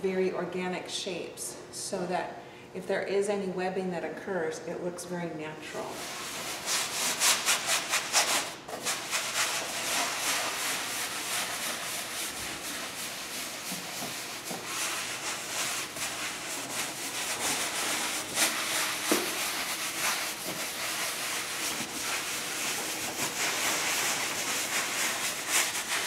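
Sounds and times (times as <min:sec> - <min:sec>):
cloth and sponge rubbing wall: 0:05.7 - 0:26.0.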